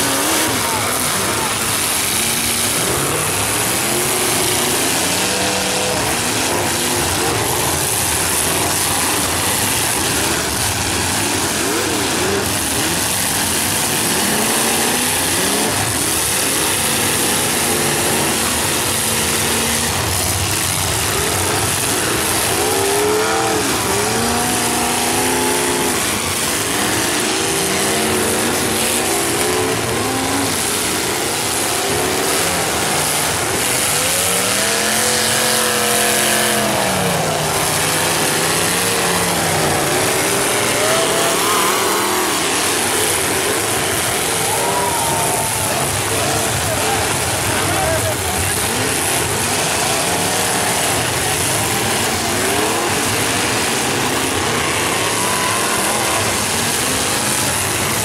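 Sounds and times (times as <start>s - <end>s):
car engines revving: 0.0s - 58.0s.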